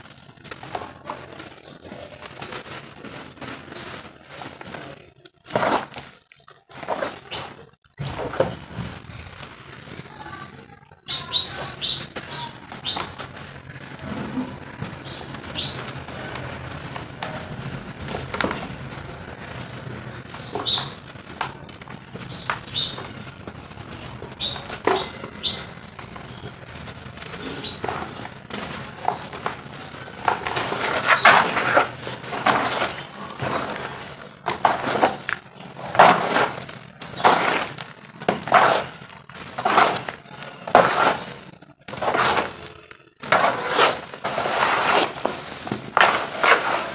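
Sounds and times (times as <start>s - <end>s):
crumbly crackle of mud chunks: 0.0s - 46.9s.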